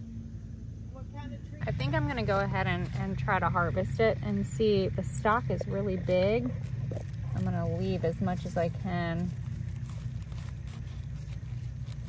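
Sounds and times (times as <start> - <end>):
low hum: 0.0 - 12.0
knife scraping through mushroom: 9.3 - 12.0.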